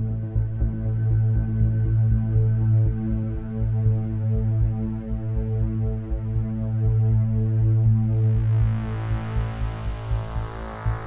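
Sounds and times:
pulsing low bass: 0.0s - 11.0s.

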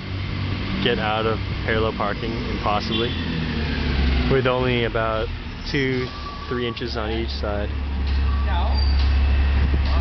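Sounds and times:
diesel engine rumbling: 0.0s - 10.0s.

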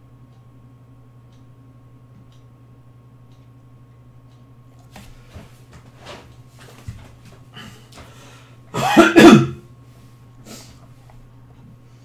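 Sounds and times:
man coughing: 8.7s - 9.6s.

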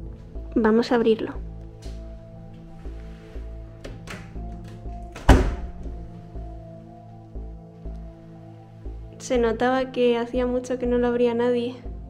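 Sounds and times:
background music: 0.0s - 12.0s
cupboard door thunk: 5.2s - 5.9s.

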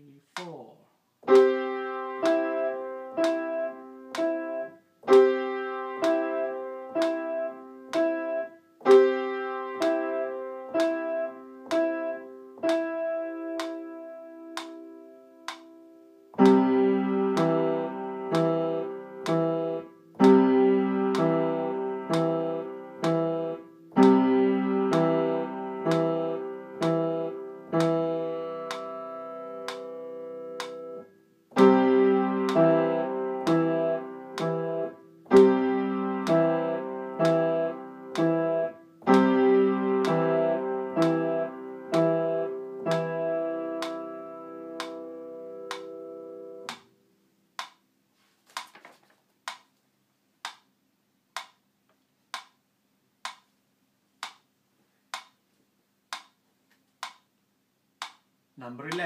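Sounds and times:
piano playing exercise: 0.0s - 48.7s
metronome ticking: 1.3s - 15.8s, 16.4s - 46.9s, 47.6s - 47.8s, 51.4s - 51.6s, 52.3s - 52.6s, 53.2s - 53.5s, 54.2s - 54.5s, 55.1s - 55.4s, 56.1s - 56.4s, 57.0s - 57.3s, 58.0s - 59.0s.

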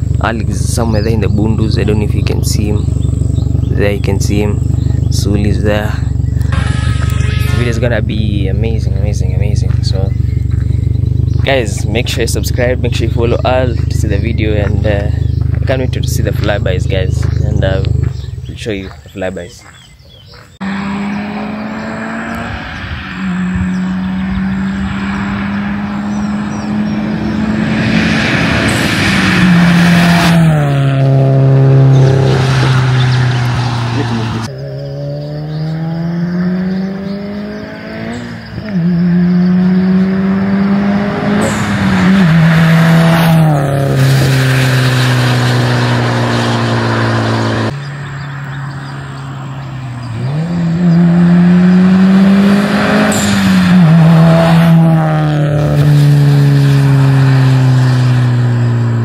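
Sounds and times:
car passing at high speed: 20.6s - 59.0s.

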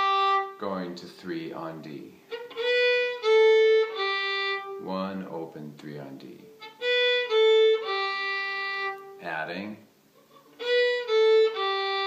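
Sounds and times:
fiddle playing slow bowed notes: 0.0s - 0.9s, 2.3s - 5.0s, 6.4s - 9.3s, 10.3s - 12.0s.

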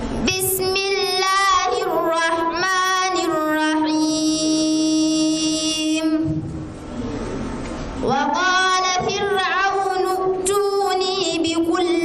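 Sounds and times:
woman reciting melodically: 0.2s - 6.5s, 8.0s - 12.0s.

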